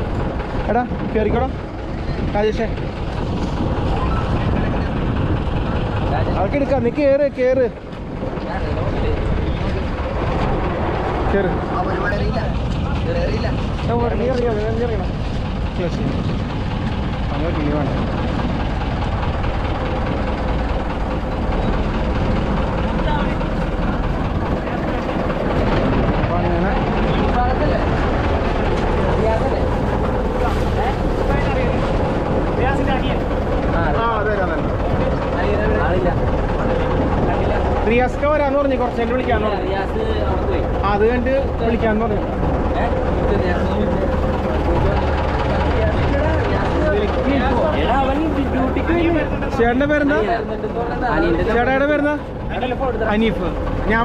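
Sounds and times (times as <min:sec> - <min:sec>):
boat engine droning: 0:00.0 - 0:54.0
people talking: 0:03.8 - 0:20.3, 0:21.6 - 0:54.0.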